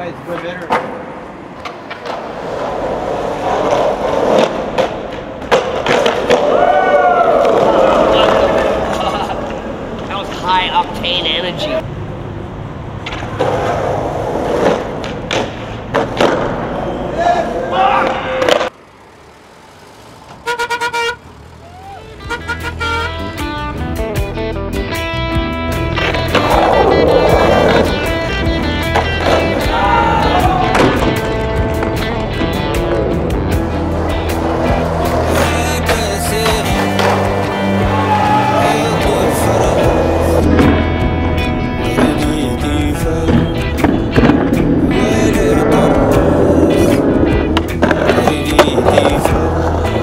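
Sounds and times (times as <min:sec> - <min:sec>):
skateboard wheels rolling on street: 0:00.0 - 0:50.0
skateboard clacks: 0:00.2 - 0:10.1, 0:13.0 - 0:16.8, 0:18.0 - 0:18.8, 0:25.8 - 0:45.0, 0:45.7 - 0:50.0
horn-like beeps: 0:22.0 - 0:23.3
music with steady bass line: 0:22.4 - 0:50.0.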